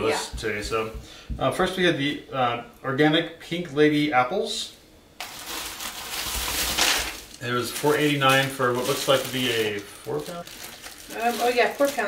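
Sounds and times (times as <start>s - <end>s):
plastic bags rustling: 5.2s - 12.0s.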